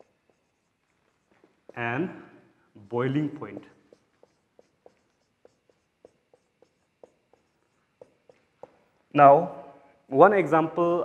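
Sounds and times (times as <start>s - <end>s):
marker pen writing on whiteboard: 0.0s - 10.1s.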